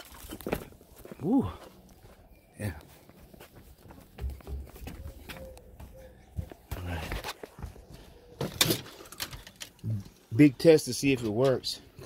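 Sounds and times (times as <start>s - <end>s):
footsteps: 0.0s - 8.7s.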